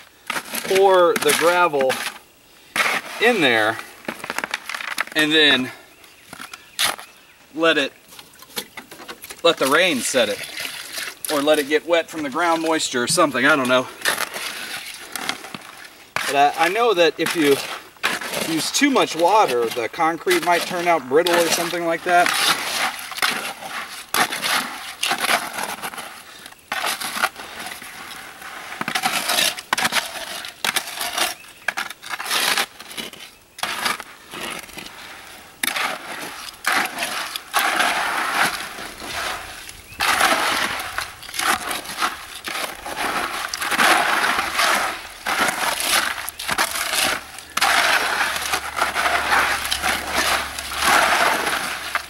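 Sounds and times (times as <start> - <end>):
gravel scraping in a plastic bucket: 0.0 - 52.0.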